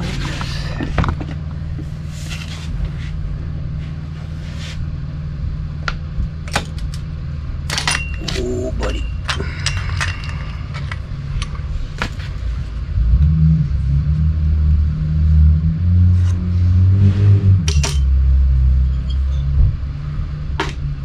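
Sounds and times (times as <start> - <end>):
vehicle engine rumbling: 0.0 - 21.0.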